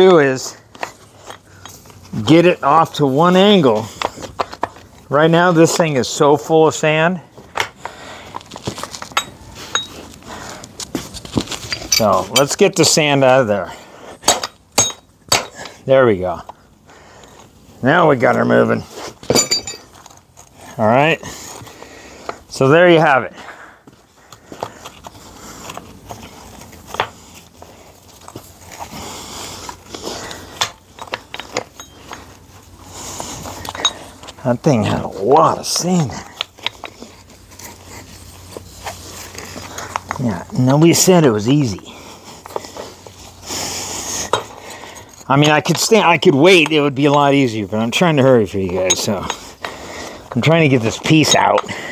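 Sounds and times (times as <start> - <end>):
light clicks and metal clinks: 8.9 - 10.2, 11.6 - 12.6, 19.2 - 20.6, 30.3 - 32.6, 33.4 - 34.4, 48.1 - 49.7.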